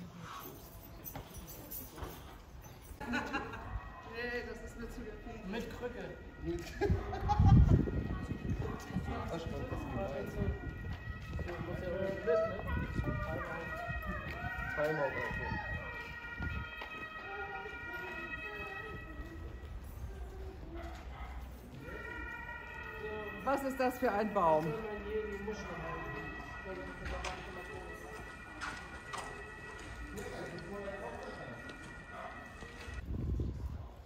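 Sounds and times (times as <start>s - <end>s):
people talking indistinctly: 3.0s - 20.8s, 21.7s - 33.0s
distant voices: 3.1s - 33.1s
faint steady tones: 3.2s - 33.0s.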